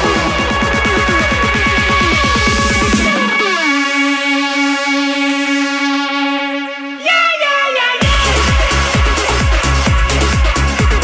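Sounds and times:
synth note gliding down: 0:00.0 - 0:08.7.

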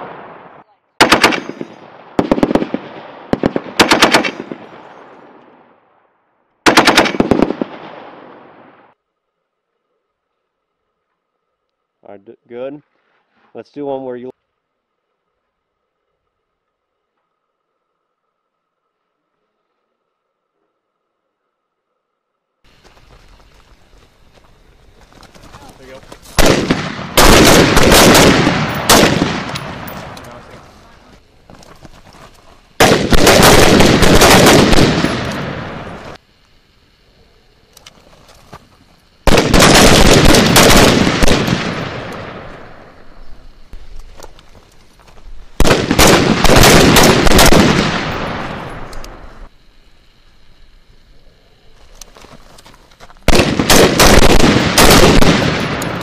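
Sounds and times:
machine gun bursts: 0:03.5 - 0:04.6, 0:06.7 - 0:07.6, 0:26.4 - 0:29.6, 0:32.8 - 0:35.5, 0:39.3 - 0:41.8, 0:45.6 - 0:48.5, 0:53.3 - 0:56.0.

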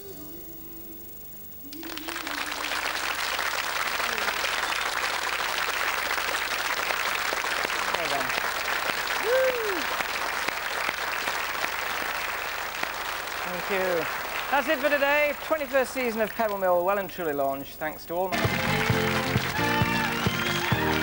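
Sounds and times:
audience applauding: 0:01.7 - 0:16.8, 0:18.3 - 0:21.0
person whooping: 0:09.2 - 0:10.0.

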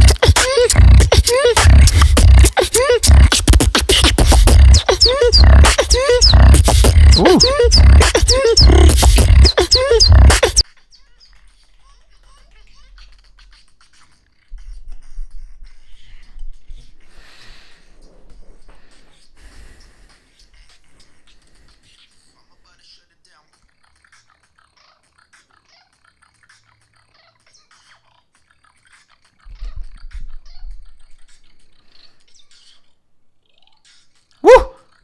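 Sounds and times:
beatboxing: 0:00.0 - 0:10.7, 0:12.9 - 0:22.4, 0:27.7 - 0:31.9.

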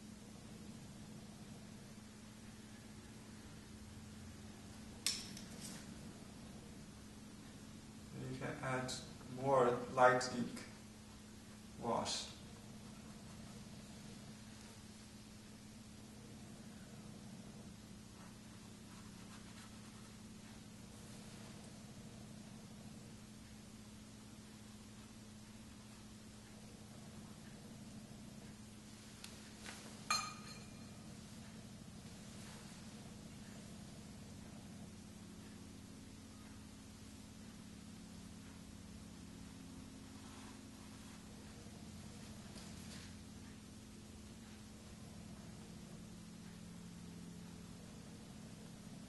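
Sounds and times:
faint steady hum: 0:00.0 - 0:49.0
faint ticks: 0:24.9 - 0:29.9
brush tapping ceramic dish: 0:30.1 - 0:30.8
sharp ringing clink: 0:30.1 - 0:31.0.

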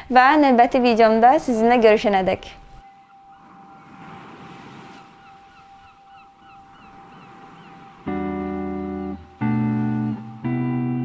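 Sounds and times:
constant high tone: 0:02.7 - 0:11.0
quick chirping calls: 0:04.7 - 0:09.5.

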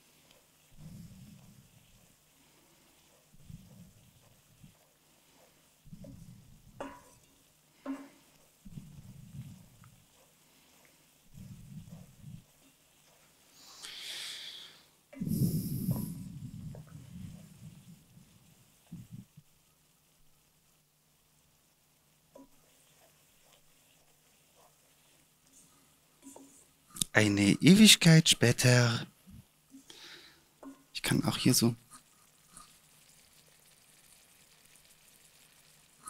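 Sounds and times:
wooden spoon scraping pan: 0:00.1 - 0:13.5, 0:22.4 - 0:26.8.

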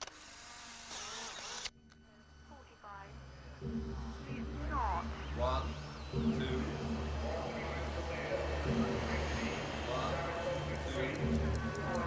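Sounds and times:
camera motor whirring: 0:00.0 - 0:02.5.

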